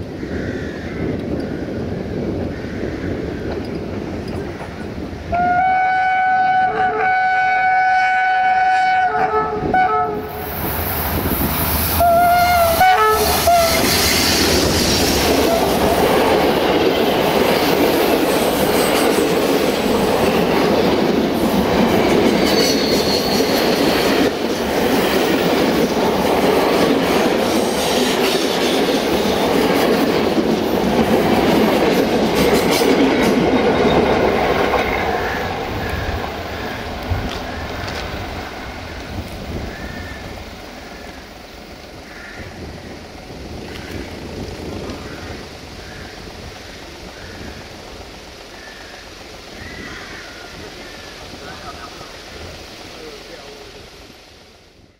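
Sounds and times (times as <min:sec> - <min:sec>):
train wheels clattering on rails: 0:01.0 - 0:05.3, 0:10.4 - 0:45.3
locomotive horn blasts: 0:05.3 - 0:10.4, 0:12.0 - 0:13.9.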